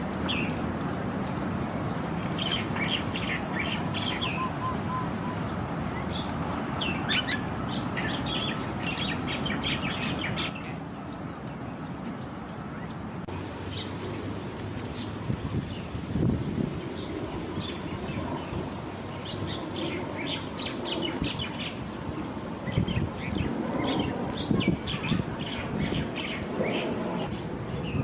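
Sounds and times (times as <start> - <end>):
small birds chirping: 1.8 - 12.2.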